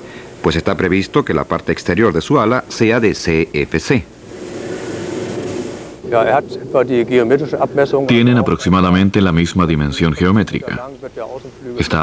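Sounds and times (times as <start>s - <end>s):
faint low hum: 0.0s - 12.0s
steady mechanical noise: 0.0s - 12.0s.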